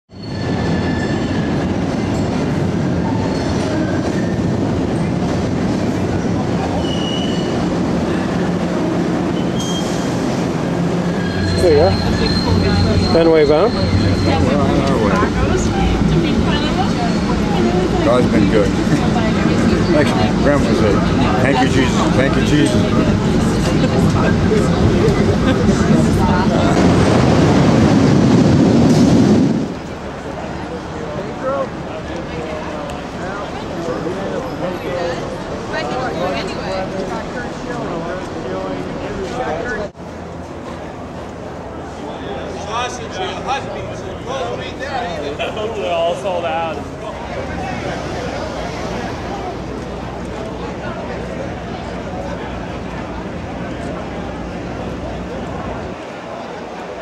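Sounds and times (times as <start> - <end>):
wheels squealing: 0.1 - 28.0
trolley rumbling on rails: 0.1 - 57.0.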